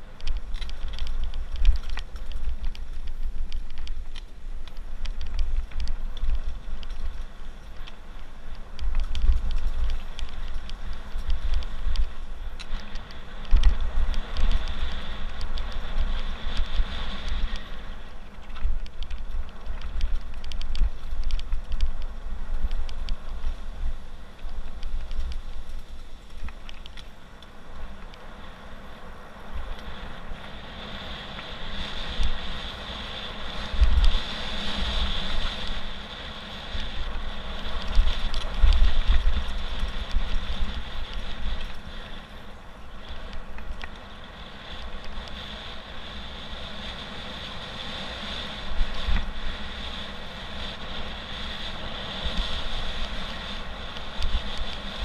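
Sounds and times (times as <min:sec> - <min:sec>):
bike rattling over bumps: 0:00.0 - 0:55.0
bike tyres rolling on gravel: 0:00.0 - 0:55.0
wind buffeting microphone: 0:00.0 - 0:55.0.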